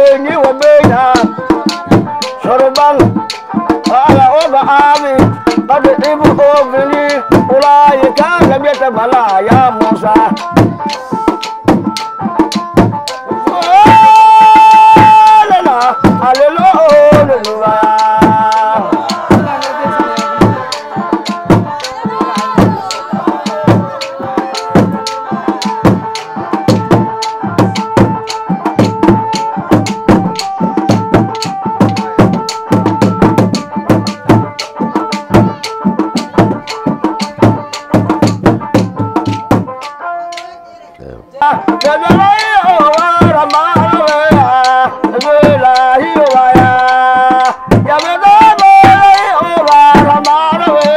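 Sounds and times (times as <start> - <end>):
drums beaten in fast rhythm: 0.0 - 50.9
held tones and voices: 40.4 - 41.4.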